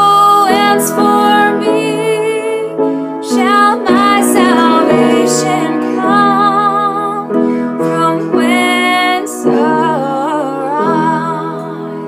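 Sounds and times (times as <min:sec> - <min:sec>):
woman singing with vibrato: 0:00.0 - 0:12.0.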